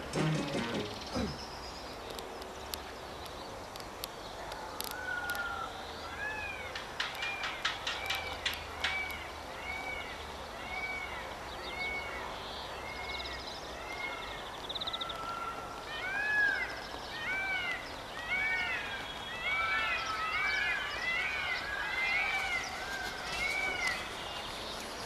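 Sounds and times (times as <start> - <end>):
background hiss: 0.0 - 25.0
chorus of animal calls: 13.8 - 24.2.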